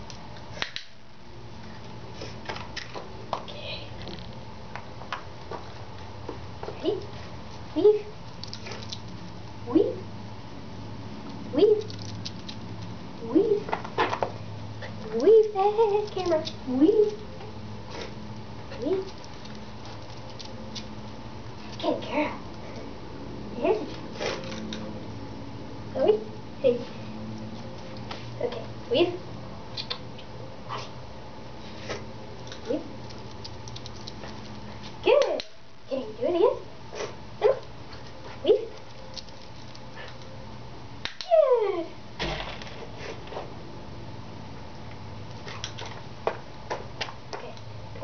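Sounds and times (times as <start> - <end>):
steady low hum: 0.0 - 48.0
dog claws on concrete: 32.4 - 35.5
dog yipping: 37.4 - 37.6.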